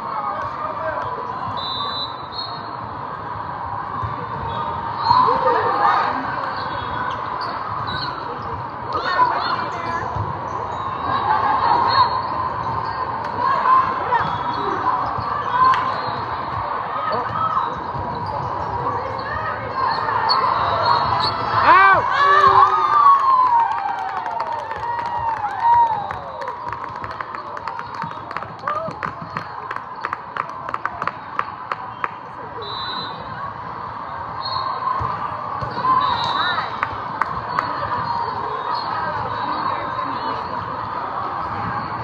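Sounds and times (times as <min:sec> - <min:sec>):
voices of players and spectators: 0:00.0 - 0:42.0.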